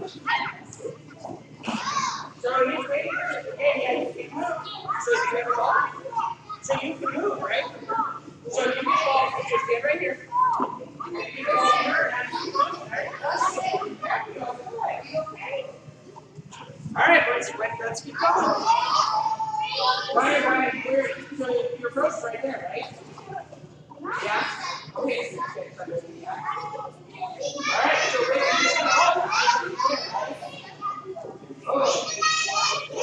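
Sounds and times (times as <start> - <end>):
children chattering and calling: 0.0 - 33.0.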